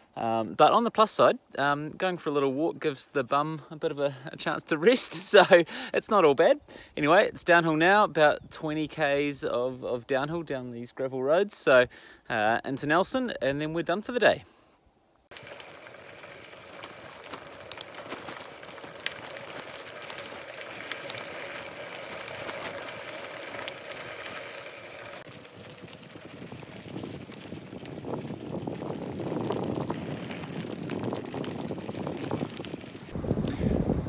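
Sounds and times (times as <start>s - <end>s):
bicycle tyres on gravel: 0.0s - 11.6s, 15.3s - 34.0s
clicks of loose stones: 15.3s - 25.3s.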